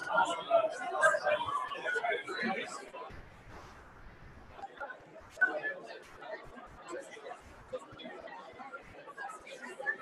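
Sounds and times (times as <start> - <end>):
babble of overlapping conversation: 0.0 - 10.0.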